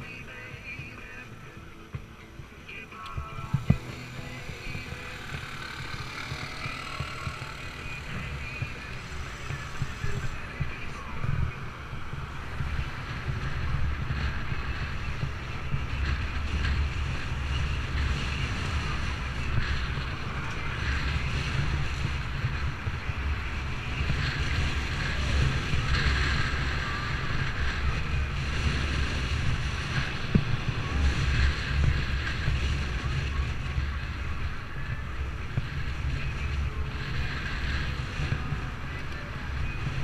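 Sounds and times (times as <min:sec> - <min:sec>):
wind rumbling on microphone: 0:00.0 - 0:40.0
cars driving past: 0:01.3 - 0:17.4.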